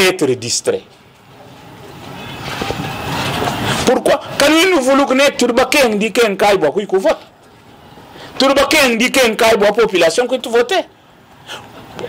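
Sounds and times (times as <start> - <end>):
passing vehicle: 1.5 - 4.4.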